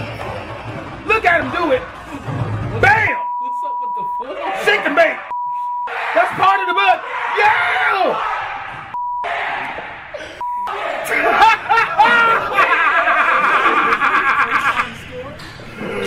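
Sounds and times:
man speaking excitedly: 0:02.7 - 0:05.3, 0:06.2 - 0:08.2
censor bleeps: 0:03.1 - 0:04.4, 0:05.3 - 0:05.9, 0:09.0 - 0:09.3, 0:10.4 - 0:10.8.

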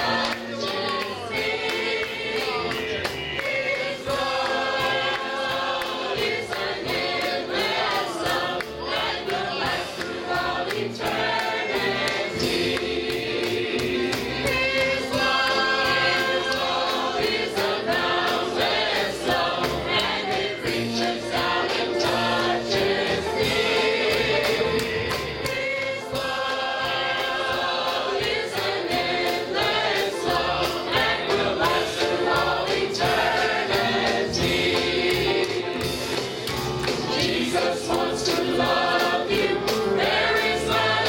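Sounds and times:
choir singing a gospel song: 0:00.0 - 0:41.0.

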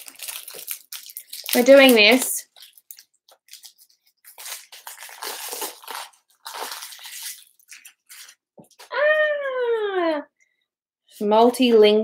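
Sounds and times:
plastic wrapping crinkling: 0:00.0 - 0:08.9.

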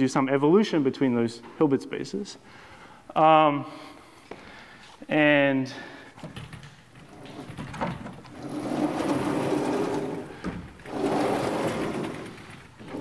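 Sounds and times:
chalkboard panels rumbling on tracks: 0:07.0 - 0:13.0.

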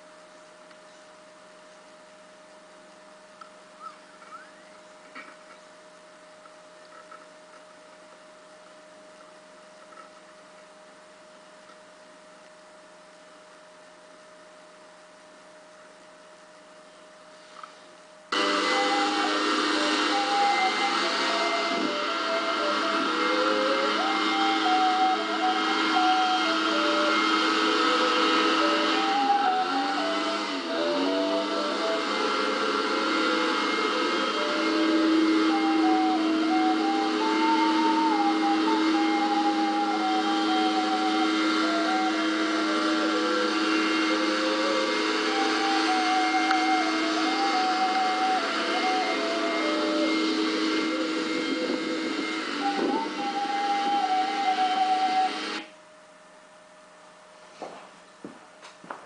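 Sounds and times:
low held tone: 0:00.0 - 0:57.3
constant hiss: 0:00.0 - 0:59.0
ocarina playing slow melody: 0:16.9 - 0:55.7.

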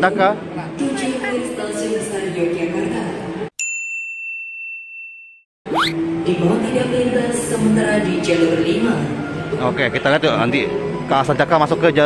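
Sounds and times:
station crowd noise: 0:06.0 - 0:12.0.

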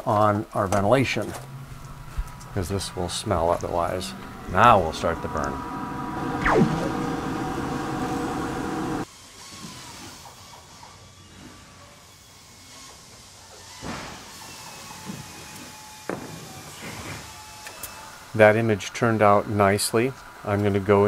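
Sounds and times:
fan and laser engraver humming: 0:00.7 - 0:09.0.

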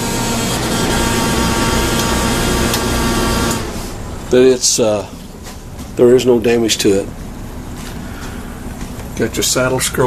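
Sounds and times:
generator engine hum: 0:00.0 - 0:10.0.

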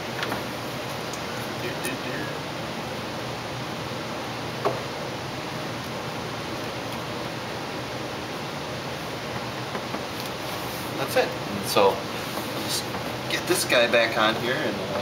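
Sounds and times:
steady hiss: 0:00.0 - 0:15.0.

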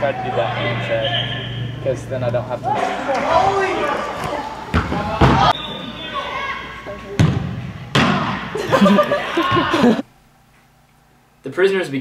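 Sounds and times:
players calling out: 0:00.0 - 0:10.1
ball kicks thudding with echo: 0:04.2 - 0:05.5, 0:07.1 - 0:08.4.

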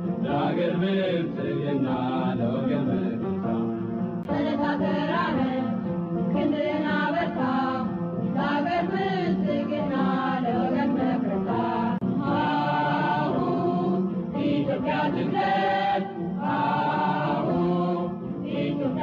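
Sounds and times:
group of voices chanting: 0:11.6 - 0:19.0.

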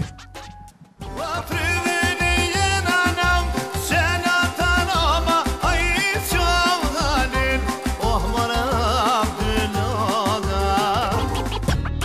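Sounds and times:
accordion: 0:00.0 - 0:12.0
record scratch effect: 0:00.0 - 0:12.0
man singing with vibrato: 0:01.0 - 0:11.6.

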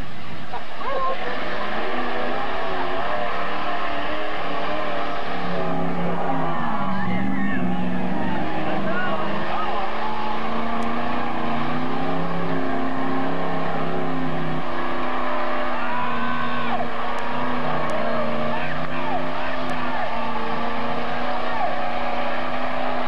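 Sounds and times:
truck engine revving: 0:00.0 - 0:23.0
spectators calling out: 0:05.4 - 0:11.2, 0:15.0 - 0:22.8.

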